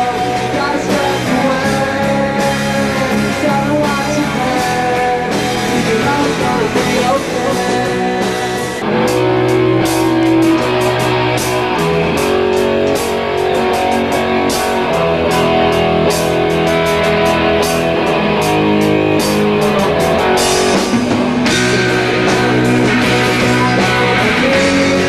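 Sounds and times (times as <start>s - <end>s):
drums: 0.0s - 25.0s
electric guitar chords: 0.0s - 25.0s.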